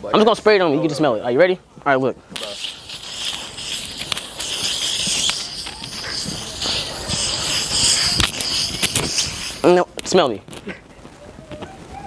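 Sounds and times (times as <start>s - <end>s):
aerosol can spraying: 2.4s - 10.1s.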